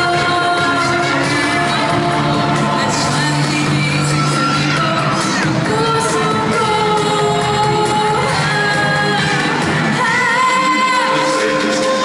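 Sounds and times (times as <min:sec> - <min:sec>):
backing music through speakers: 0:00.0 - 0:12.0
person singing pop song: 0:00.0 - 0:12.0.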